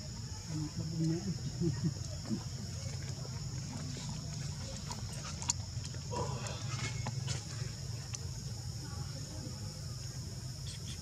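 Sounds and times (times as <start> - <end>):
insect drone: 0.0 - 11.0.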